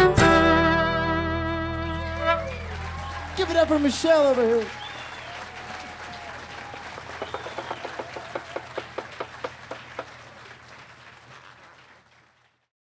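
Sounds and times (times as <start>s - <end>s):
audience applauding: 1.8s - 12.7s
close sharp claps: 2.3s - 12.6s.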